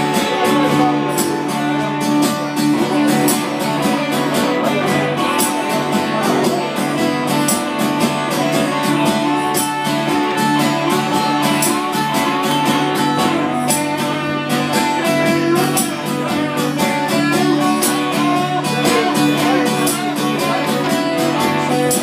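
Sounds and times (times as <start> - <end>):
electric guitar playing: 0.0 - 22.0
strummed acoustic guitar: 0.0 - 22.0.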